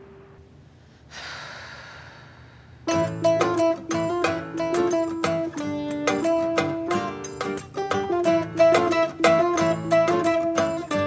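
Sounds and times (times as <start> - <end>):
person sighing: 1.1 - 2.8
plucked string music: 2.9 - 11.0.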